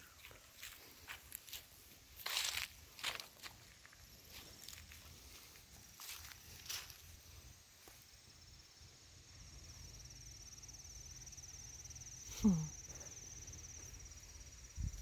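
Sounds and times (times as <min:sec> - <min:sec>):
high insect trill: 0:00.0 - 0:15.0
footsteps on pavement: 0:00.2 - 0:06.8.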